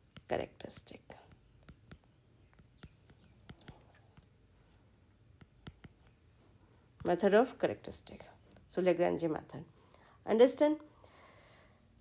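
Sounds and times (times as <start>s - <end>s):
stylus tapping on glass screen: 0.1s - 4.3s, 5.3s - 6.2s.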